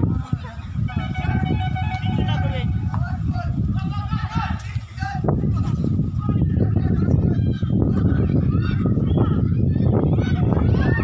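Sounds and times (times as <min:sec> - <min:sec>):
children shouting: 0:06.4 - 0:11.0.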